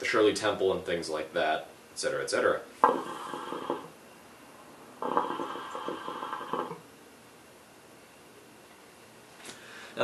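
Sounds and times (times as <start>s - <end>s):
hookah water bubbling: 2.8s - 4.0s, 4.8s - 6.9s.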